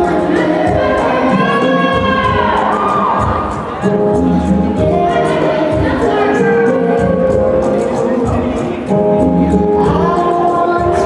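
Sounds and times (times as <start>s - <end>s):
light steady percussion: 0.0s - 11.0s.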